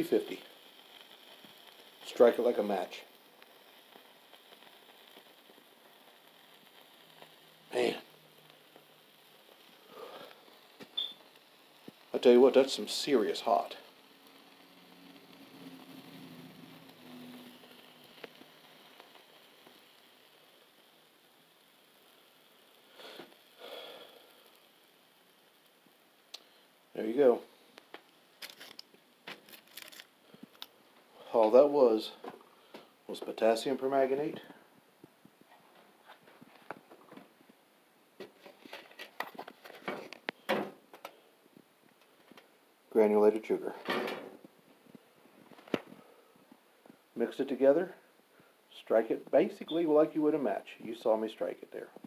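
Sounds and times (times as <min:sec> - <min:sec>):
burning mixture hissing and crackling: 0:00.0 - 0:52.0.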